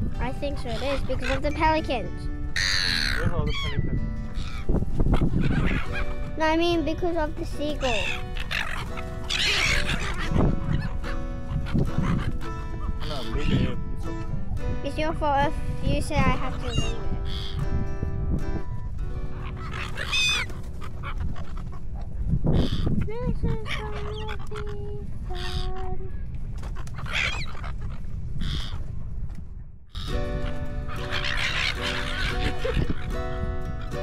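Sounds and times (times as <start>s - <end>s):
gulls calling harshly: 0.0s - 28.8s, 29.9s - 34.0s
wind rumble on microphone: 0.0s - 34.0s.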